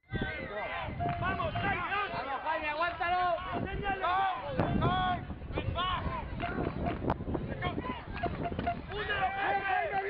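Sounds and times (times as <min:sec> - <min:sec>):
wind rumble on microphone: 0:00.1 - 0:09.7
players shouting calls: 0:00.1 - 0:10.0.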